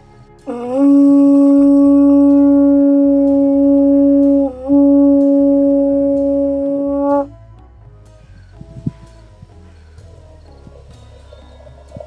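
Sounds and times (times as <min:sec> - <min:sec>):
conch shell blown: 0:00.4 - 0:07.3.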